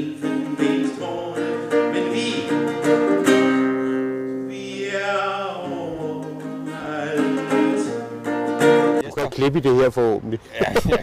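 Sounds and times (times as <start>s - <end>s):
man singing: 0.0s - 9.0s
fingerpicked classical guitar: 0.0s - 9.1s.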